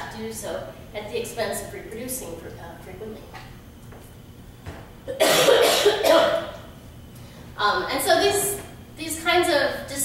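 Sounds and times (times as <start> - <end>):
woman coughing: 5.1 - 6.6.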